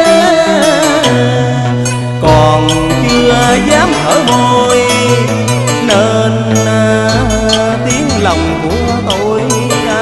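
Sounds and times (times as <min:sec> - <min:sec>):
instrumental accompaniment: 0:00.0 - 0:10.0
man singing a long note: 0:00.0 - 0:10.0.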